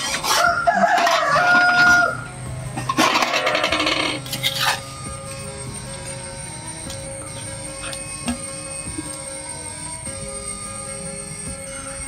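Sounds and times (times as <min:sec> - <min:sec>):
rooster crowing: 0:00.2 - 0:02.3.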